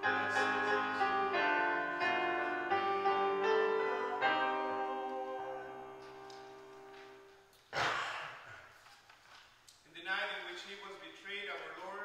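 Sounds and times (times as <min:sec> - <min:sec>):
piano chord: 0:00.0 - 0:07.4.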